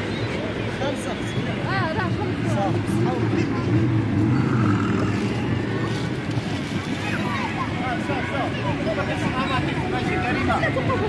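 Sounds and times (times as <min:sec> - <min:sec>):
outdoor background noise: 0:00.0 - 0:11.0
indistinct voices: 0:01.2 - 0:10.5.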